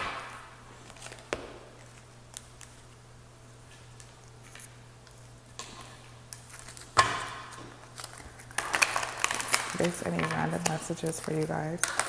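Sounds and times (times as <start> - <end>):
cards slapping: 0.0 - 2.8
cards being shuffled: 0.8 - 3.0, 7.8 - 12.0.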